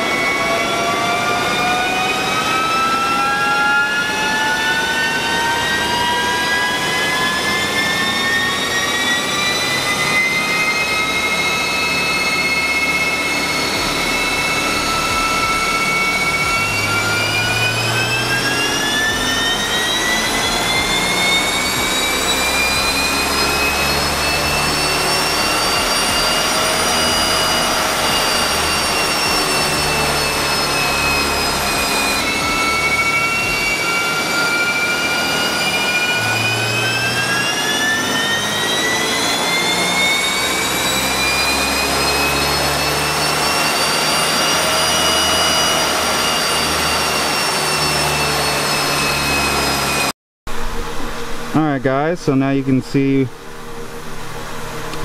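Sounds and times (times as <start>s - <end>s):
car engine rising whine: 0.0s - 55.0s.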